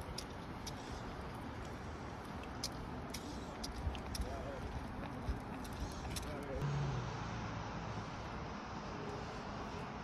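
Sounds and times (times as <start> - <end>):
road traffic noise: 0.0 - 10.0
vehicle engine hum: 0.0 - 10.0.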